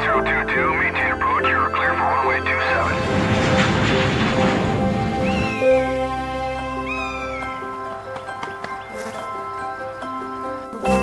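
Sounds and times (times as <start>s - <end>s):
background music: 0.0s - 11.0s
rushing noise: 2.7s - 6.5s
gull calling: 5.2s - 5.8s, 6.6s - 7.8s.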